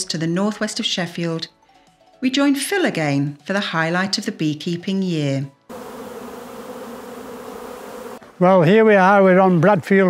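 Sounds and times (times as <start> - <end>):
honeybees humming: 5.7 - 8.4.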